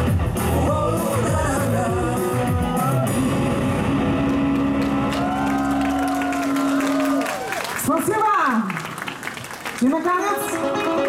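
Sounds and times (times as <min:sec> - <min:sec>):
pop-rock band held low note: 0:00.0 - 0:06.9
singer's voice gliding: 0:00.4 - 0:03.2.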